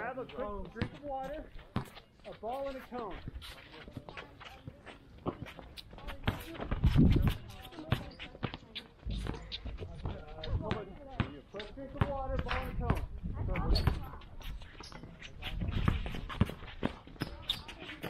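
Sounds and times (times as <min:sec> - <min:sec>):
background voices talking: 0:00.0 - 0:18.0.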